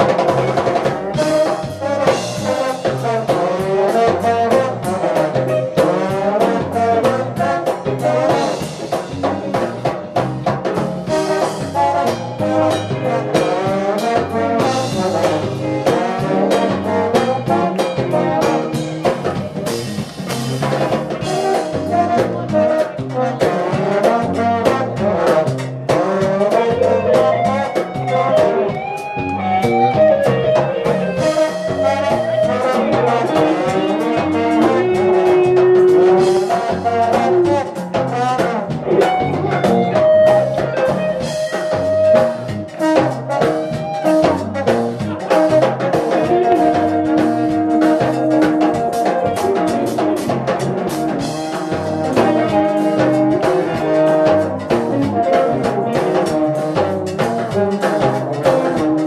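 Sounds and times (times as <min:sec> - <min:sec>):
drum kit beat: 0:00.0 - 0:59.0
trombones playing: 0:00.0 - 0:59.0.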